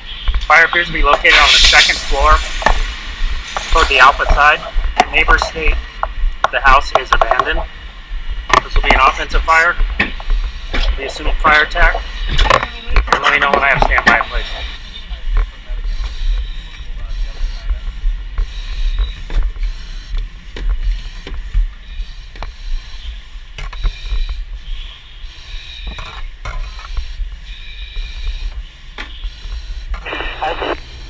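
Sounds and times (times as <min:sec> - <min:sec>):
radio transmission: 0:00.0 - 0:07.8, 0:08.5 - 0:31.0
low rumble: 0:00.9 - 0:10.6
breathing through mask regulator: 0:01.4 - 0:04.3.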